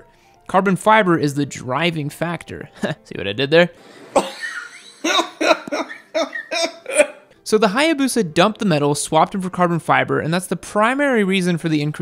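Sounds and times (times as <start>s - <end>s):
man laughing: 4.1s - 7.2s.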